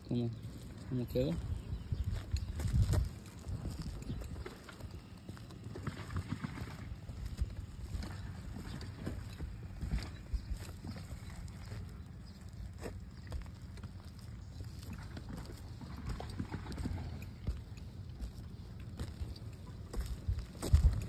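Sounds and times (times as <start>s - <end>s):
low steady rumble: 0.0s - 21.0s
footsteps on shingle roof: 0.4s - 21.0s.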